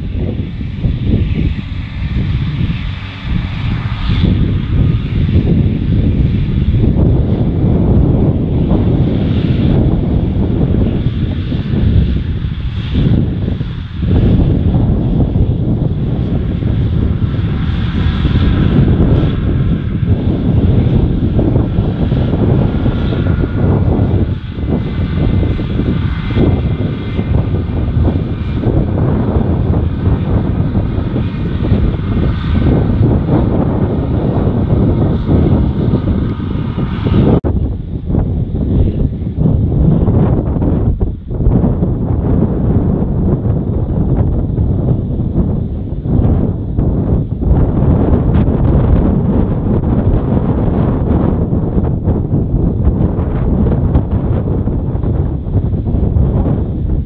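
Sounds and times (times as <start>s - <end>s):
tractor engine and mower: 0.0s - 37.4s
wind buffeting microphone: 0.0s - 57.0s.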